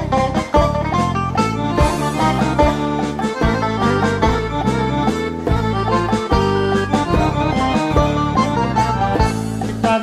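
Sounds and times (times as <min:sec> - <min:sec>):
band playing instrumental music: 0:00.0 - 0:10.0.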